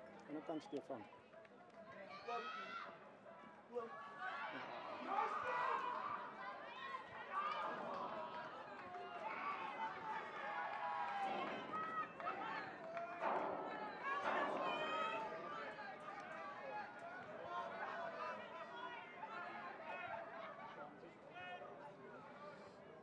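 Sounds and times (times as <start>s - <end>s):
voices shouting and calling out: 1.9s - 22.7s.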